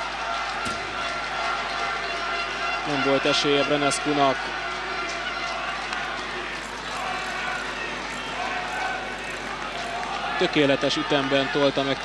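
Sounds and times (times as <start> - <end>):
stadium crowd voices: 0.0 - 12.0.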